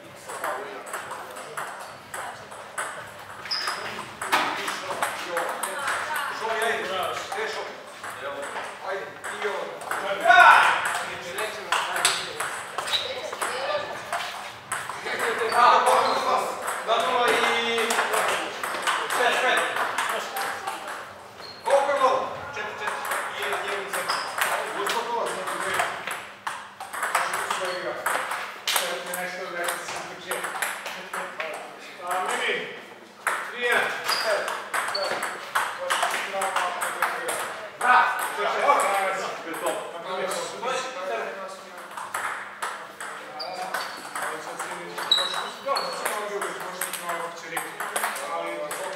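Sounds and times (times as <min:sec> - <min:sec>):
table tennis ball clicking: 0:00.3 - 0:06.4, 0:16.6 - 0:21.0, 0:22.9 - 0:28.9, 0:34.1 - 0:39.0, 0:41.8 - 0:48.9.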